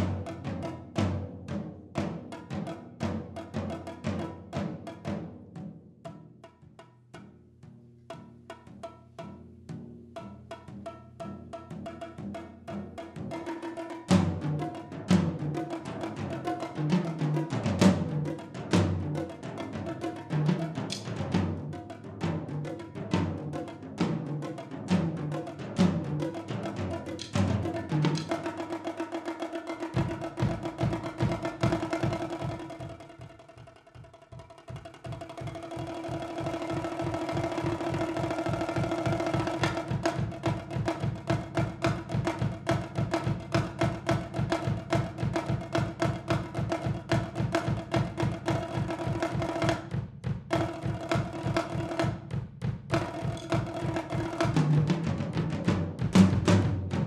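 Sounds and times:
toms and bongos struck with sticks: 0:00.0 - 0:57.0.

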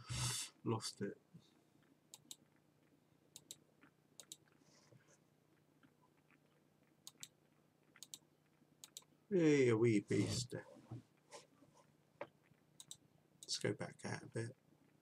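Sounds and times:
computer mouse clicks: 0:02.1 - 0:02.5, 0:03.3 - 0:03.6, 0:04.2 - 0:04.6, 0:07.0 - 0:08.2, 0:08.8 - 0:09.1, 0:12.8 - 0:13.6.

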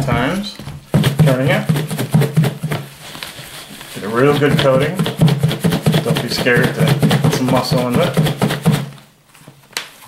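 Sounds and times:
food shaken in plastic bowl: 0:00.9 - 0:09.0.

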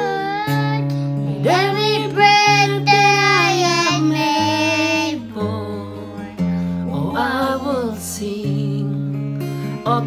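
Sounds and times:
child singing: 0:00.0 - 0:05.5
acoustic guitar chords: 0:00.0 - 0:10.0.

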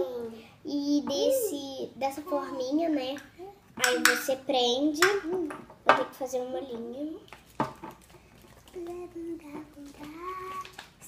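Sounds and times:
girl's wordless voice: 0:00.0 - 0:07.3, 0:08.6 - 0:11.0.

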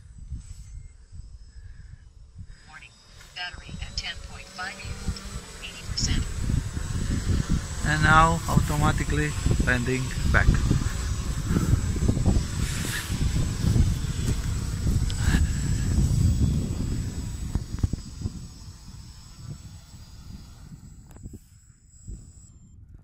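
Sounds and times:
drone motors low rumble and whine: 0:00.0 - 0:23.0.

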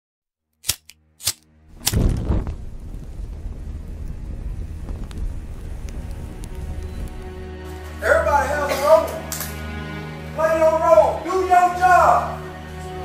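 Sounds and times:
sharp cracks: 0:00.6 - 0:07.3
heavy boom with deep rumble: 0:01.7 - 0:07.4
faint crackles: 0:01.8 - 0:08.0.

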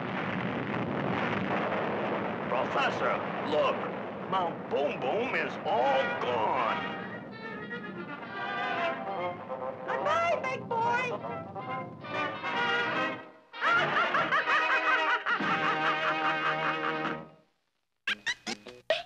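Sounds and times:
cartoon character laughing: 0:13.6 - 0:17.1, 0:18.1 - 0:19.0
cartoon music: 0:18.1 - 0:19.0.

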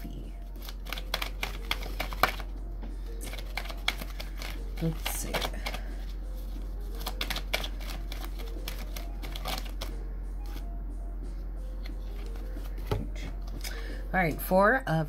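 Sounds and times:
cards being shuffled: 0:00.5 - 0:02.5, 0:03.1 - 0:10.7, 0:11.8 - 0:13.7
steady low hum: 0:08.0 - 0:15.0.

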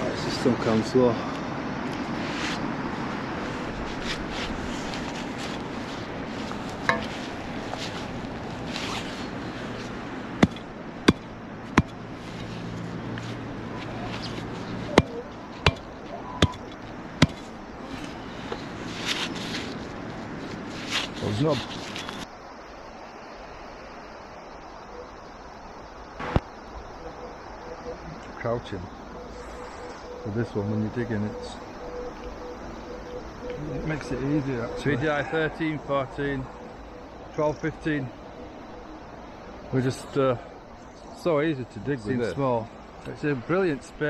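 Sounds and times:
digging in grassy turf: 0:03.4 - 0:22.2
sharp knocks: 0:10.4 - 0:12.0, 0:14.9 - 0:16.6, 0:17.2 - 0:17.5.

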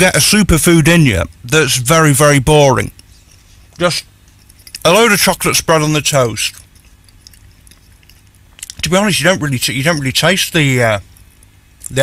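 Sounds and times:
man speaking: 0:00.0 - 0:02.9, 0:03.8 - 0:04.1, 0:04.8 - 0:06.6, 0:08.7 - 0:11.0
wet chewing of food: 0:06.5 - 0:08.8.

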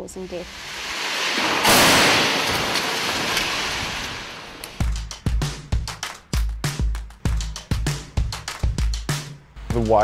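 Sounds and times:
vehicle crash burst: 0:00.5 - 0:04.8
drum-led music: 0:04.8 - 0:10.0.

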